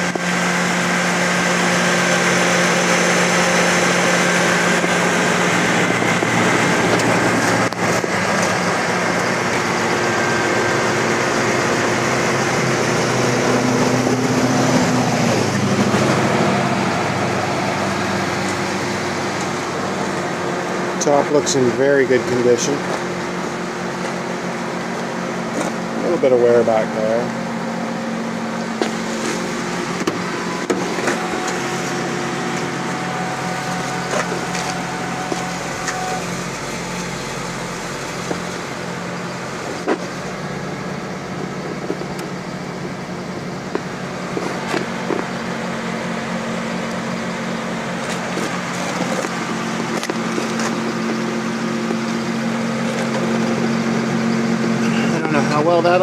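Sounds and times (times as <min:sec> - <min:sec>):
low mechanical hum: 0:00.0 - 0:56.0.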